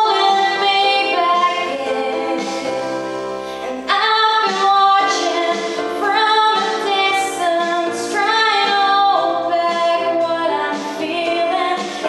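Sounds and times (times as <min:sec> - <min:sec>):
woman singing a pop ballad: 0:00.0 - 0:03.0, 0:03.6 - 0:12.0
recorded backing track: 0:00.0 - 0:12.0.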